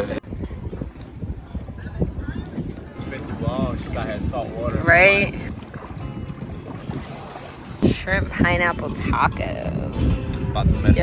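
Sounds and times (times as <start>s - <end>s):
wind buffeting microphone: 0.0s - 11.0s
shallow sea water washing: 1.6s - 9.9s.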